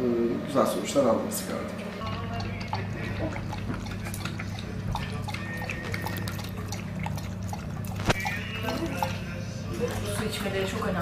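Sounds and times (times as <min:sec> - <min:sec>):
steady low hum: 0:00.0 - 0:11.0
dog lapping water: 0:02.0 - 0:11.0.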